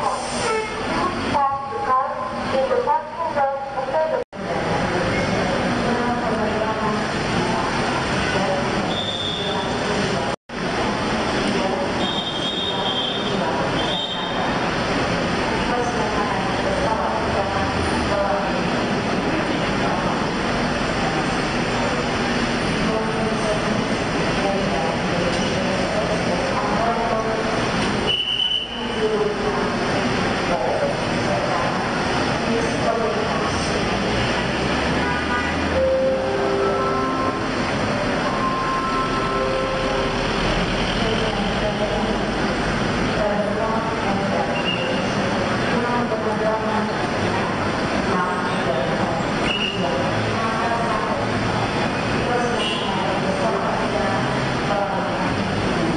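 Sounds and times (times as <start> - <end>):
indistinct voices talking: 0.0 - 55.9
bus engine running: 13.3 - 28.1, 28.8 - 52.5.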